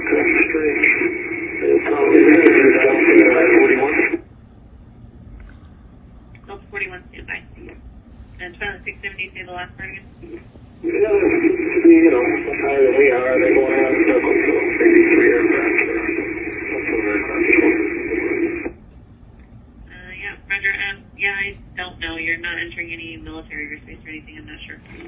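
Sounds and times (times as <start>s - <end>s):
choppy radio speech: 0.0s - 4.3s, 6.5s - 18.8s, 19.9s - 25.0s
radio transmission: 0.0s - 4.3s, 6.5s - 18.8s, 19.9s - 25.0s.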